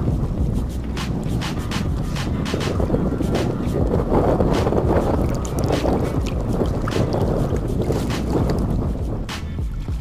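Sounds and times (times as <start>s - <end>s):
wind buffeting microphone: 0.0s - 10.0s
water sloshing and splashing: 3.6s - 10.0s
short sharp splashes: 4.5s - 9.8s.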